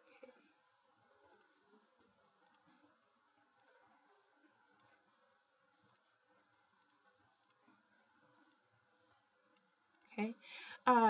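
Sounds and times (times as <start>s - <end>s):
low steady room hum: 0.0s - 11.0s
computer mouse clicks: 1.2s - 1.8s, 2.4s - 3.8s, 4.7s - 5.0s, 5.8s - 6.2s, 6.8s - 7.8s, 8.4s - 8.7s, 9.5s - 10.2s
woman talking: 10.2s - 11.0s.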